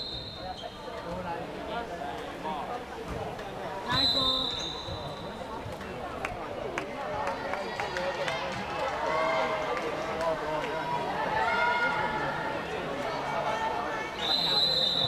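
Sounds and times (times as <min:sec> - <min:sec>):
referee's whistle blast: 0:00.0 - 0:00.8, 0:03.9 - 0:05.3, 0:14.2 - 0:15.0
players calling and chattering: 0:00.0 - 0:15.0.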